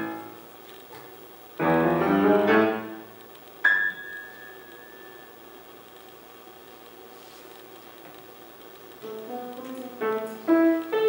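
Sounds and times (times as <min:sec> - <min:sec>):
high grand piano note: 0:01.6 - 0:05.4, 0:09.0 - 0:11.0.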